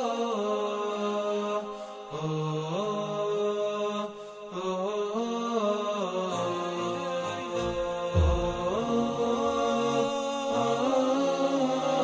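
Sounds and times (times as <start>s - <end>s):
slow chanted vocal line: 0.0s - 12.0s.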